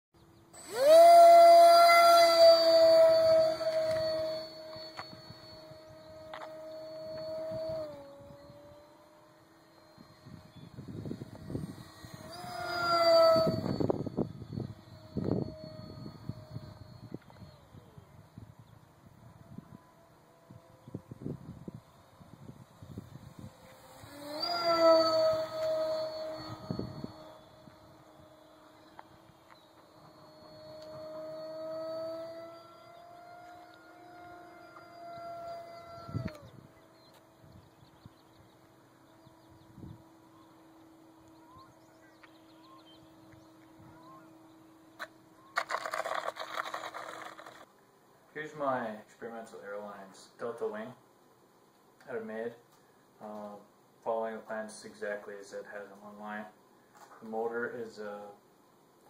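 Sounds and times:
electric motor and propeller whining: 0.2s - 47.7s
wind buffeting microphone: 10.0s - 28.4s, 35.2s - 38.5s.

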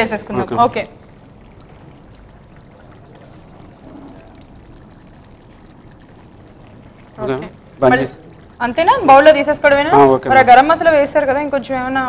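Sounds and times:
curry bubbling in a pan: 0.0s - 12.0s.

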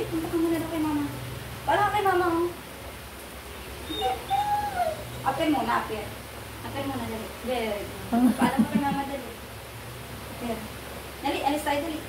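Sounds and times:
dog whining: 3.8s - 5.4s.

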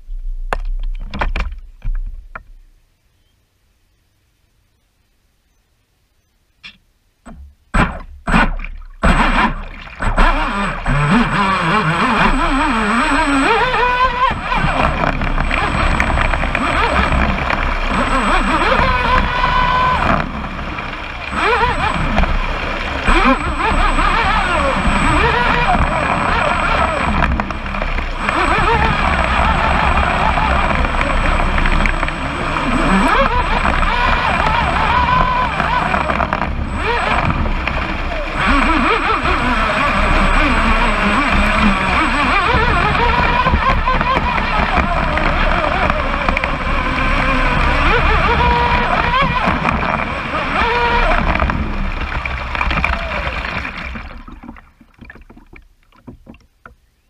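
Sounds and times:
water rushing along hull: 7.2s - 57.0s
electric motor whine: 9.0s - 54.4s.

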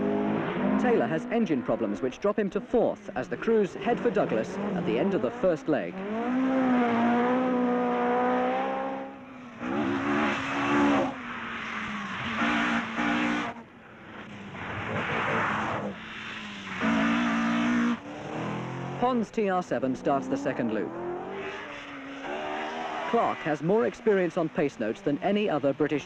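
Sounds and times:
cars passing at speed: 0.0s - 26.0s
rally car engines revving: 0.0s - 26.0s.

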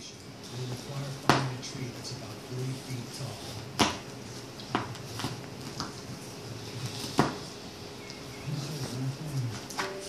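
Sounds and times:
dogs grunting: 6.3s - 9.8s.

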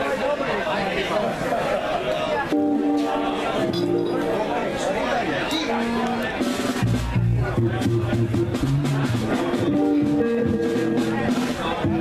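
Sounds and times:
crowd chatter: 0.0s - 12.0s
held instrument notes: 2.5s - 12.0s
bass and drums: 5.8s - 12.0s.

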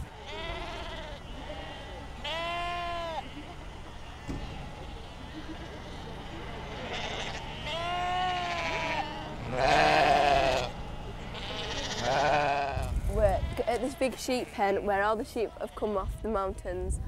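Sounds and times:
sheep bleating: 0.1s - 14.8s.

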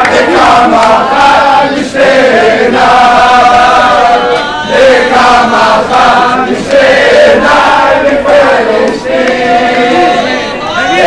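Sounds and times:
young men chanting in unison: 0.0s - 11.0s.

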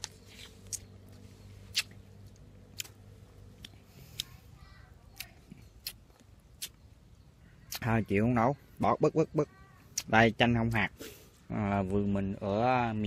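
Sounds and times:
lime tearing wetly: 1.7s - 3.0s.

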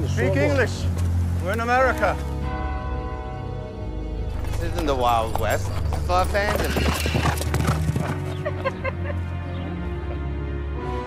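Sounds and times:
low music drone: 0.0s - 11.0s
hooves clip-clopping: 4.4s - 10.2s
horse whinnying: 6.5s - 8.3s.

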